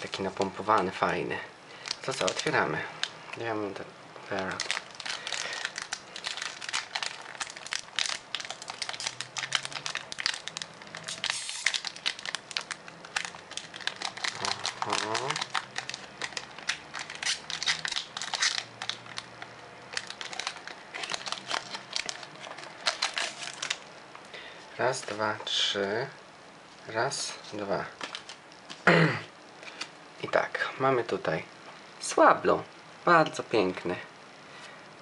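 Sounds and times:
foil wrapper crinkling: 0:01.8 - 0:03.2, 0:04.3 - 0:23.9, 0:27.5 - 0:28.8.

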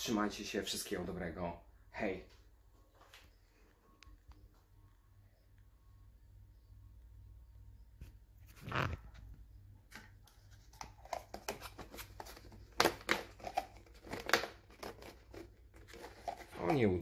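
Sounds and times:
plastic tub crinkling: 0:10.0 - 0:17.0.

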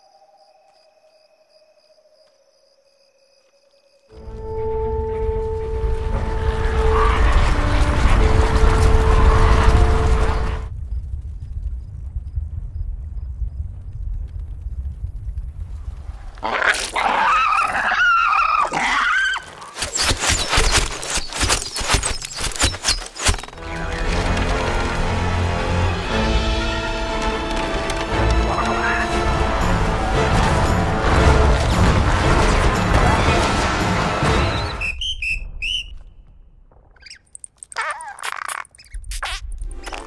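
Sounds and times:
cartoon insect chirping: 0:37.0 - 0:40.0.

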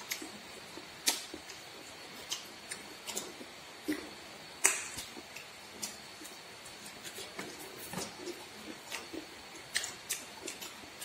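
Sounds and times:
eating smacks and clicks: 0:00.0 - 0:11.0.

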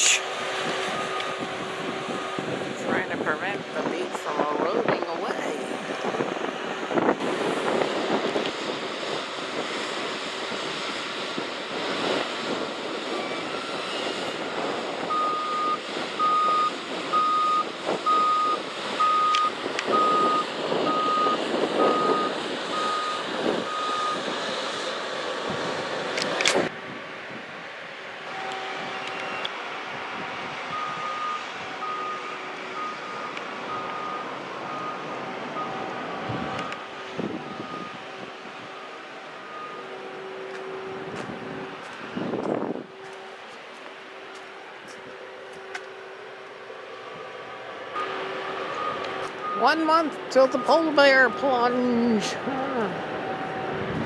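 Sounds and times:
wind: 0:00.0 - 0:54.0
reversing alarm beeping: 0:00.8 - 0:01.5, 0:13.1 - 0:24.2, 0:28.3 - 0:29.5, 0:30.7 - 0:38.0, 0:38.7 - 0:40.6, 0:48.0 - 0:52.0.

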